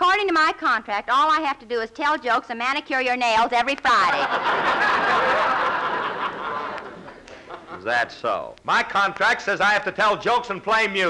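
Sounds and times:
audience laughing: 4.1s - 7.9s.

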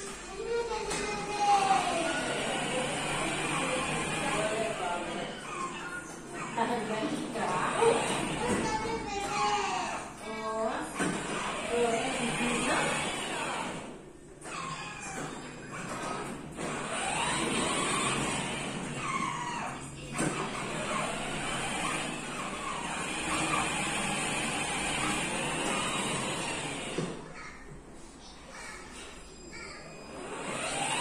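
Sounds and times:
young child's voice: 0.0s - 4.4s, 7.8s - 10.4s, 27.2s - 30.2s.

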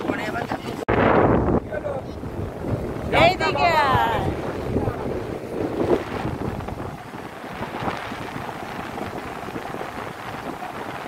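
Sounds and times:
surf washing: 0.0s - 11.0s
wind buffeting microphone: 0.0s - 11.0s.

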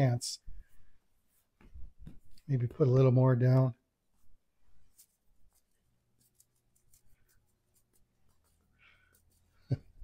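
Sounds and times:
faint soft scratches and taps: 0.5s - 2.5s, 4.1s - 9.9s.

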